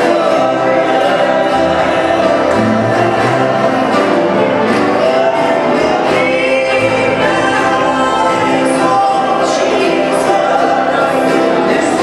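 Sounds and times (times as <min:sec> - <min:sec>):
gospel choir singing: 0:00.0 - 0:12.0
held bass notes: 0:00.0 - 0:12.0.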